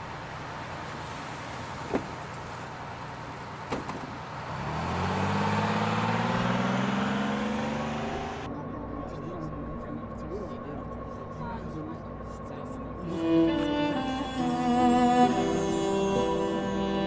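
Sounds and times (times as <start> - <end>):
bus diesel engine pulling away: 0.0 - 8.5, 12.3 - 17.0
traffic noise: 0.0 - 17.0.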